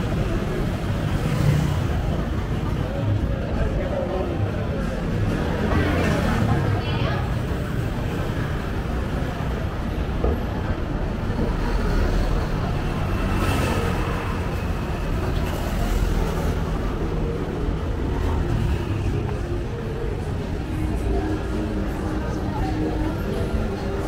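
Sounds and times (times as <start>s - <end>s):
low rumble of traffic: 0.0s - 24.0s
people's voices: 0.0s - 24.0s
vehicles passing by: 0.0s - 24.0s.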